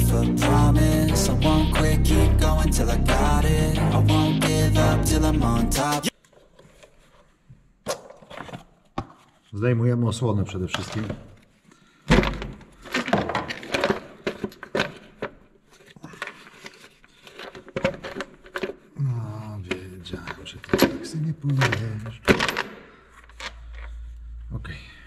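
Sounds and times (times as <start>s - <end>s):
plastic knocks and clatter: 12.1s - 15.4s, 16.2s - 18.9s, 19.7s - 23.5s.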